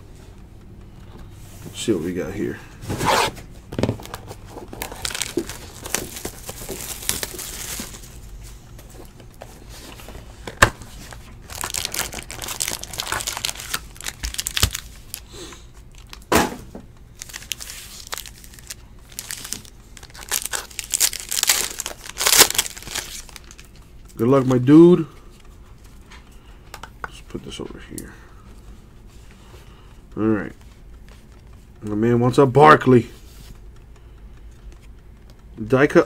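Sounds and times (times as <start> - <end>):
foil packs crinkling and ripping: 3.8 - 8.2, 10.4 - 16.3, 17.2 - 23.8
cardboard and wrapping tearing: 4.0 - 8.1, 11.4 - 15.3, 17.2 - 23.6.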